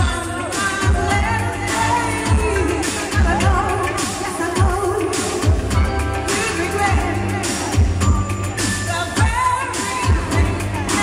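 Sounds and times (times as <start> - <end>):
dance backing with kick drum: 0.0 - 11.0
woman singing into microphone: 0.0 - 11.0.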